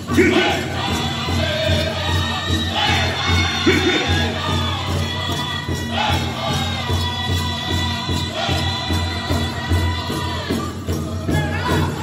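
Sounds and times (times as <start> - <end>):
group singing in high voices: 0.0 - 12.0.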